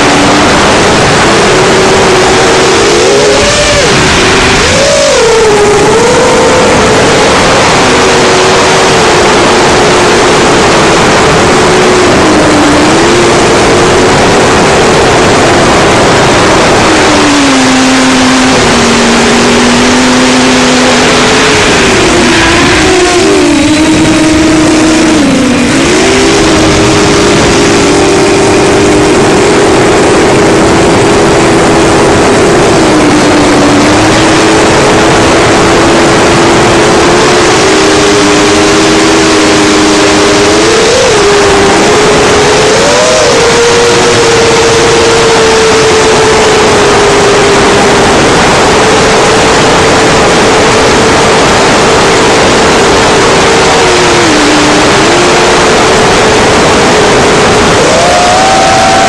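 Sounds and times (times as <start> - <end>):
drone motors buzzing whine: 0.0 - 59.0
rush of air: 0.0 - 59.0.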